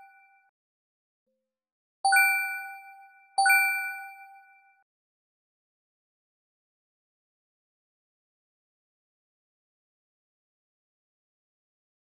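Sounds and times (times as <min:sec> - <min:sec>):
bell-like chime: 0:02.1 - 0:04.8.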